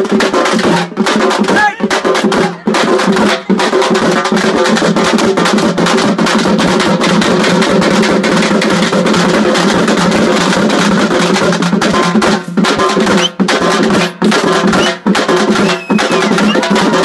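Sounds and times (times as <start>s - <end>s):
drums beaten fast: 0.0s - 17.0s.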